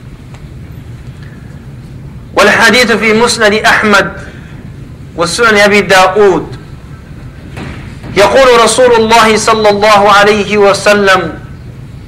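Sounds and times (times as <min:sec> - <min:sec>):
room background rumble: 0:00.0 - 0:12.0.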